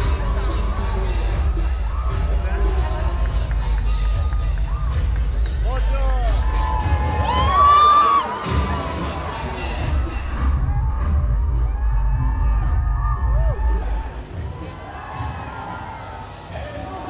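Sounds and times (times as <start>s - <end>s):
crowd cheering and screaming: 0.0s - 17.0s.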